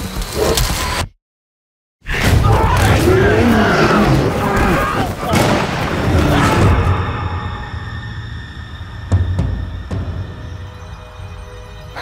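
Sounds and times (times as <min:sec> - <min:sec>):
bear growling: 0:02.5 - 0:07.0.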